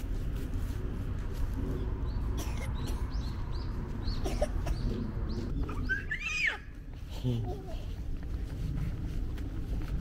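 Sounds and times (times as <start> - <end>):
birds calling: 1.7 - 6.6.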